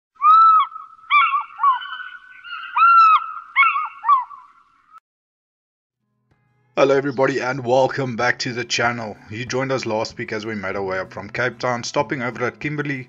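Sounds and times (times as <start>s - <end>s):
large bird honking calls: 0.2s - 4.6s.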